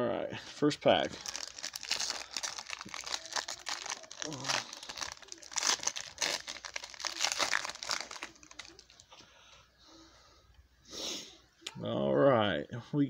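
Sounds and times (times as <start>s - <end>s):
wrapper and cards rustling: 1.0s - 9.1s
foil pack tearing and crinkling: 1.1s - 9.0s.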